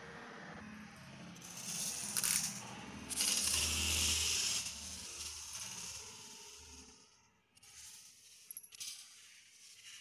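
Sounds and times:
wind-up toy mechanism whirring: 1.4 - 7.0.

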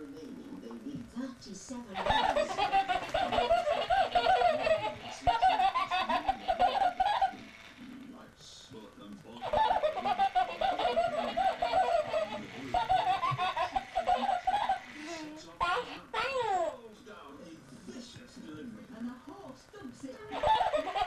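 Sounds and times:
high-pitched laughter: 2.0 - 7.5, 9.4 - 14.9, 20.3 - 21.0.

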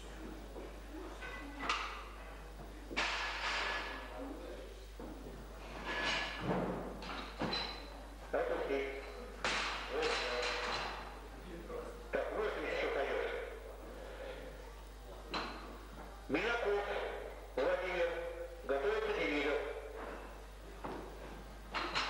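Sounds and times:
voices echoing in hall: 7.6 - 21.3.

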